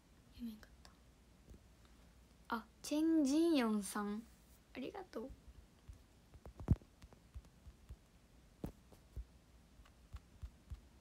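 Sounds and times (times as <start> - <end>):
woman whispering: 0.3 - 1.0.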